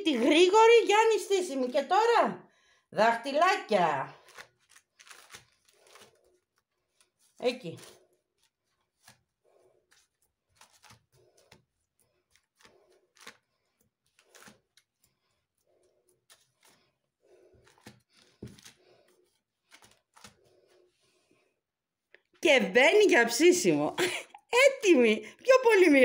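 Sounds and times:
fingertips tapping dough: 7.8s - 20.6s.

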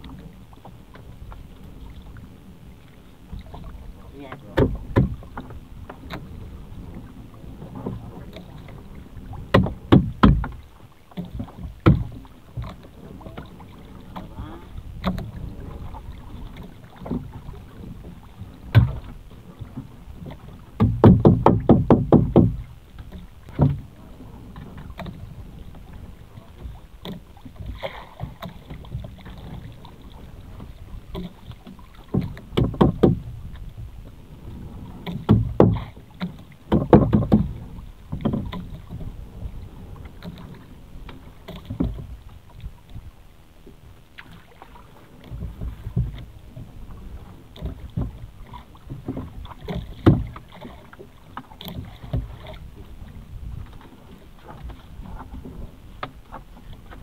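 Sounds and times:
knocks and thumps: 4.5s - 5.2s, 9.5s - 10.6s, 11.8s - 12.7s, 20.8s - 22.7s, 32.1s - 33.2s, 35.2s - 35.9s, 36.7s - 37.5s, 49.1s - 50.4s.

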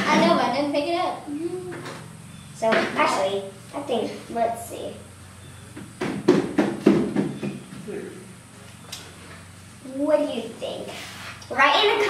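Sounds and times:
children's voices: 0.0s - 2.0s, 9.8s - 12.0s.

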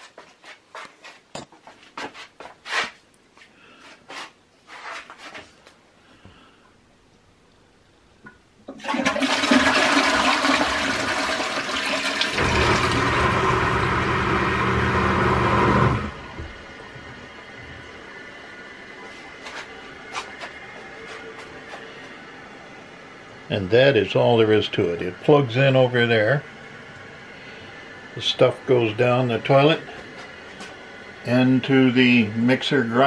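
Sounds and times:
water rushing into toilet bowl: 8.7s - 16.3s
grinder pump humming: 8.7s - 33.0s
tank refilling hiss: 8.8s - 15.3s.

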